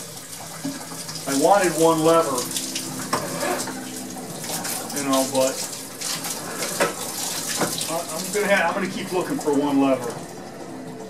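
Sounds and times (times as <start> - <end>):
water splashing into sink: 0.0 - 11.0.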